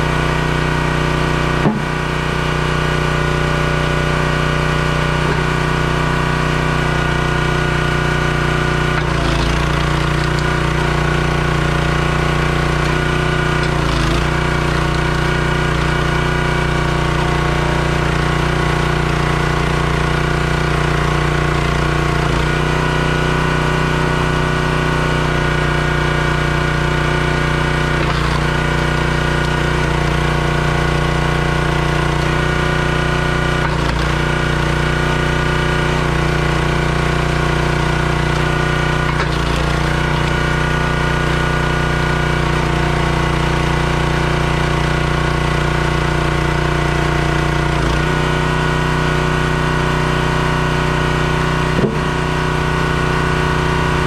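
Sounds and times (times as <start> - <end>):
log splitter gas engine running: 0.0 - 54.0
logs splitting: 1.4 - 2.2, 8.6 - 20.2, 27.6 - 35.5, 36.1 - 40.8, 51.6 - 52.5.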